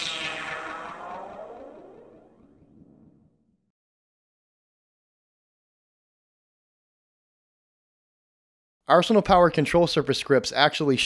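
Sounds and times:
synthesized downward sweep: 0:00.0 - 0:03.7.

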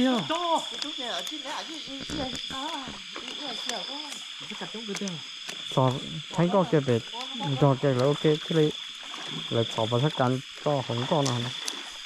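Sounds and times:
quiet voices talking: 0:00.0 - 0:08.7
night insects chorus: 0:00.0 - 0:12.0.

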